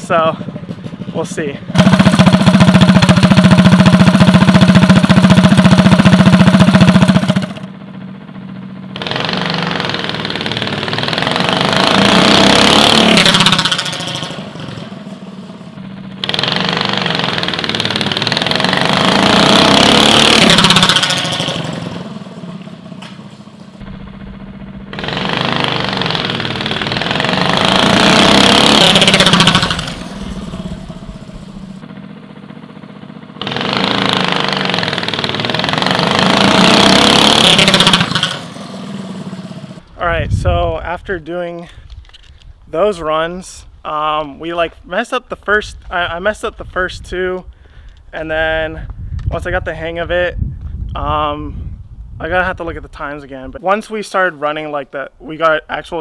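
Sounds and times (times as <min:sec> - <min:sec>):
go-kart engine running: 0:00.0 - 0:40.0
go-kart full-throttle runs: 0:00.0 - 0:40.8.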